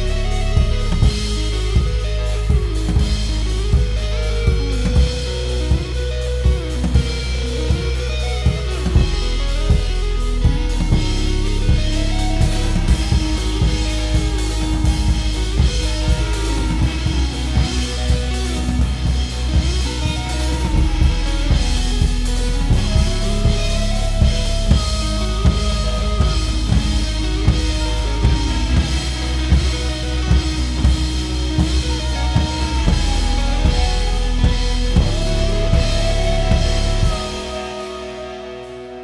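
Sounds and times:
drum kit beat: 0.0 - 39.0
gliding melodic lines: 0.0 - 39.0
low bass: 0.0 - 39.0.

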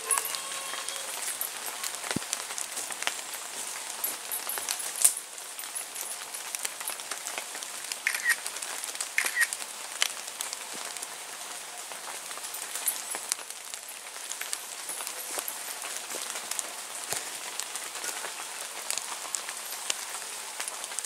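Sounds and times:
rain pattering on leaves: 0.0 - 21.0.

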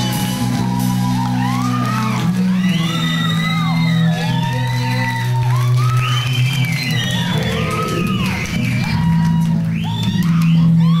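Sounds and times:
rock band playing: 0.0 - 11.0
electric guitars sliding notes: 6.8 - 10.5.

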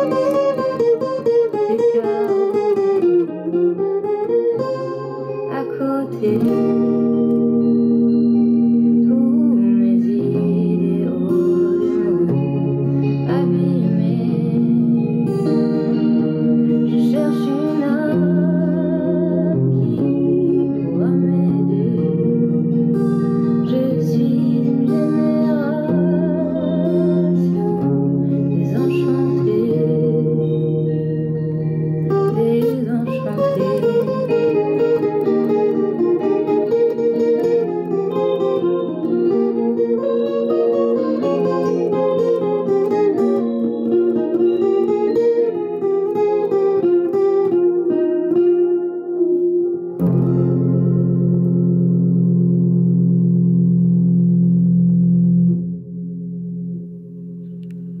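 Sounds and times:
steel-string guitar picking: 0.0 - 58.0.

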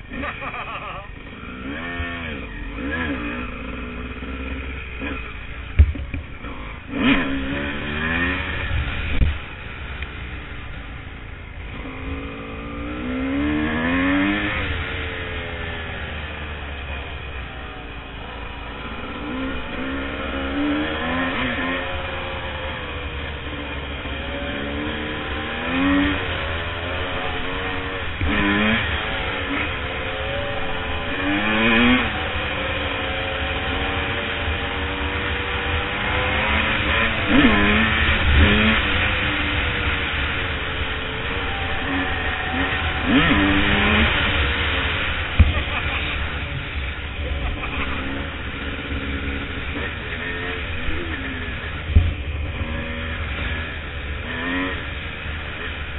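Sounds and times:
constant low rumble: 0.0 - 55.9
dirt bike engine revving: 0.0 - 55.9.

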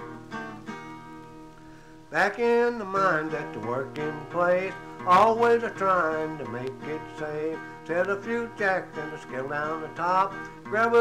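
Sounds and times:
acoustic guitar strummed chords: 0.0 - 11.0.

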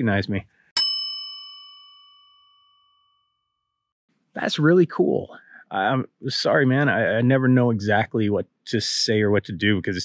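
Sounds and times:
bell ringing: 0.8 - 3.3.

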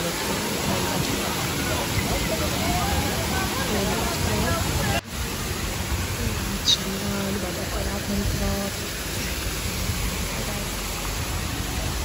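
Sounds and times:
waterfall splashing into pool: 0.0 - 12.0.

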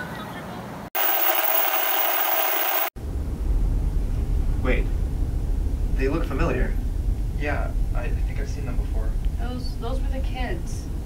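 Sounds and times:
loud hissing static: 1.0 - 2.9
low steady rumble: 3.0 - 11.0.

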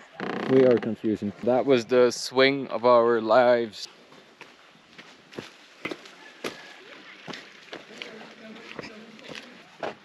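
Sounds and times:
faint footsteps on a path: 0.0 - 1.8, 3.8 - 10.0.

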